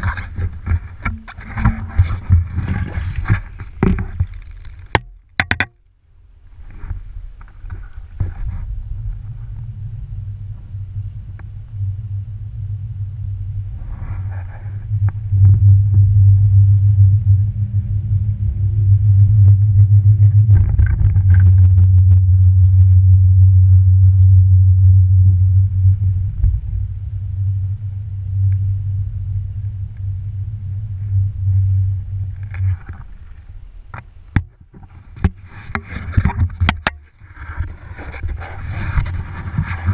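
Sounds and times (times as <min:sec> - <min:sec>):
chairlift low rumble: 0:00.0 - 0:05.4, 0:06.1 - 0:39.9.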